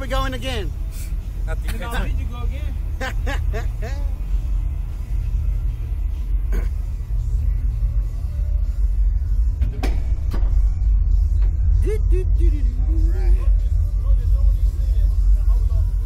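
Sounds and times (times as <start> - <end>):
low rumble: 0.7 - 16.0.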